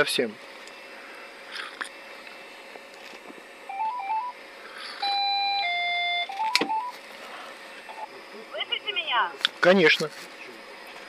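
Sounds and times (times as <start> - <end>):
electronic beeping melody: 3.7 - 4.4, 5.0 - 7.0.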